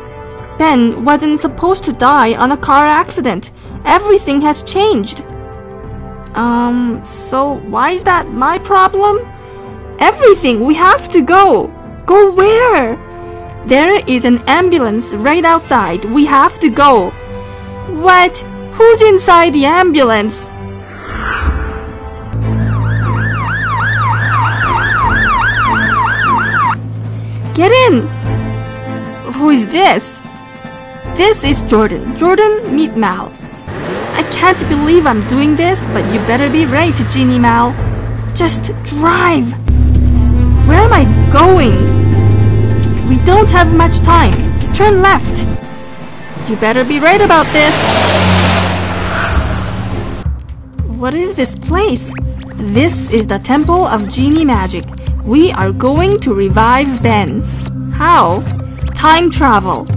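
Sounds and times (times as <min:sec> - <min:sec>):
ambulance siren yelping: 0:22.5 - 0:26.8
car engine driving off: 0:39.7 - 0:50.4.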